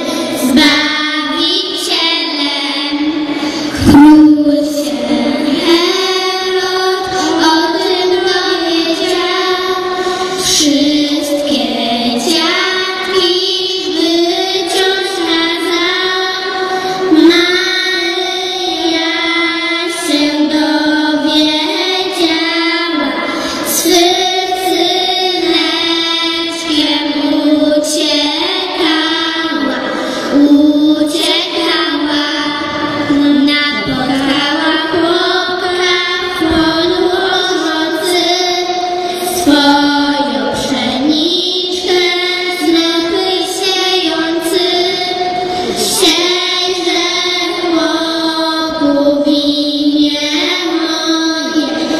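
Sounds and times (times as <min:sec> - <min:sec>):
girls singing into microphones: 0:00.0 - 0:51.9.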